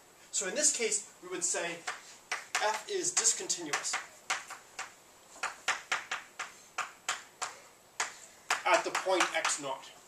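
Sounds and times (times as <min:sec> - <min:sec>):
chalk tapping on blackboard: 0:01.8 - 0:09.7.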